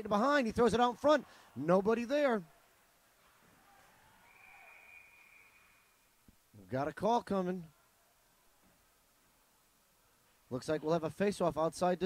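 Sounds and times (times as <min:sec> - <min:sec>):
referee's whistle blast: 0:04.2 - 0:06.1.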